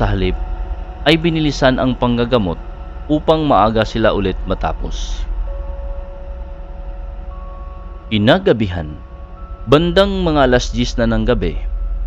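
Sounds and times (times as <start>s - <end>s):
low droning rumble: 0.0s - 12.0s
soft sustained music notes: 0.0s - 12.0s.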